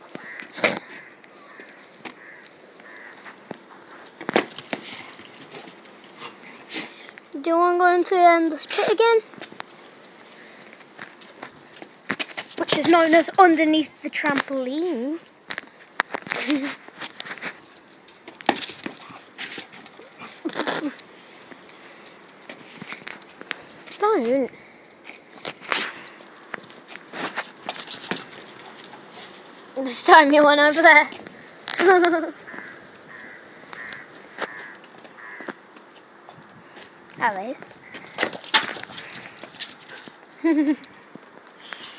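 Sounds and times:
dogs playing with rubber ball: 4.2s - 6.6s, 16.2s - 23.6s, 26.5s - 29.4s, 37.8s - 40.2s
dog feet crackling dry leaves: 8.5s - 36.0s.

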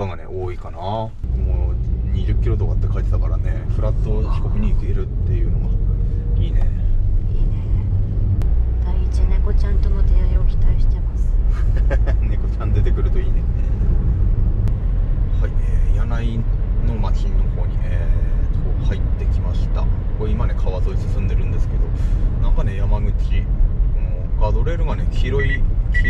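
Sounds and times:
car road and engine rumble: 0.0s - 26.0s.

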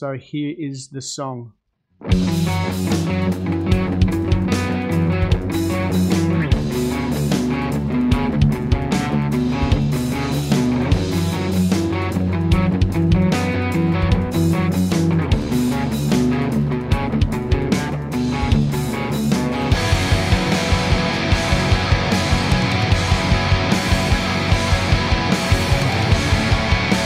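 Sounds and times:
electric guitar playing rock: 2.0s - 27.0s
regular drum hits: 2.1s - 27.0s.

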